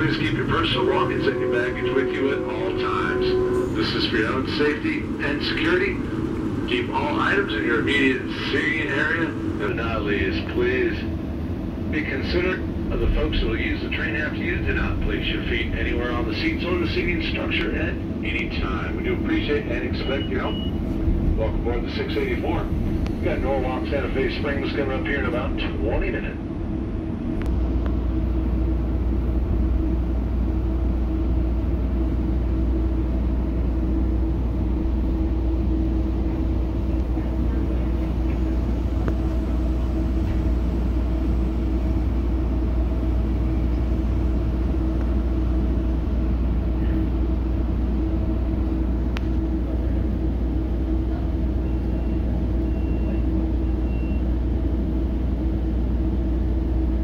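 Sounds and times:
constant humming tone: 0:00.0 - 0:57.0
train car rumble and drone: 0:00.0 - 0:57.0.

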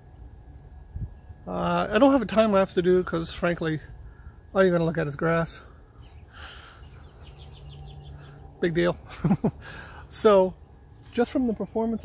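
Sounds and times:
distant bird chirping: 0:00.0 - 0:12.0.

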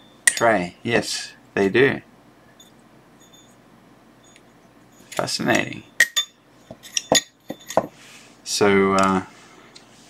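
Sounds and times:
metal pads clinking on metal tray: 0:06.0 - 0:07.9.

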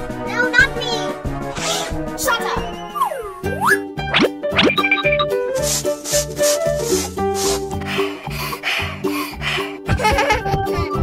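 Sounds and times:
upbeat children's music: 0:00.0 - 0:11.0.

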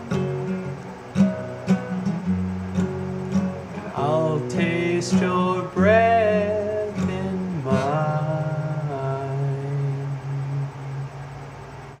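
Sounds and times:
acoustic guitar: 0:00.0 - 0:11.7
man singing held notes: 0:03.9 - 0:11.0.

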